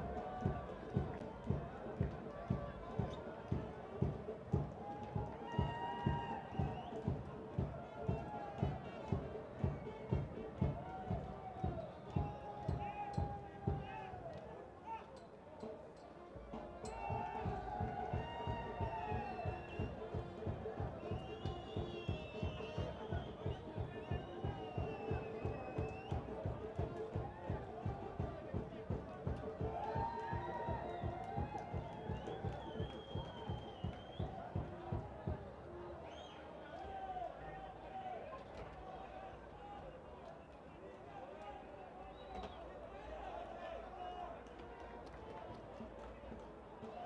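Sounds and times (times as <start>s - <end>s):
steady drumbeat: 0.0s - 14.2s, 16.4s - 35.6s
voices: 0.0s - 47.0s.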